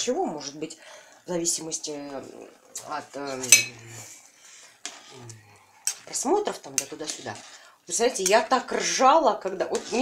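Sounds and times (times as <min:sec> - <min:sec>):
metal spoon clinking on pot: 0:03.5 - 0:03.8.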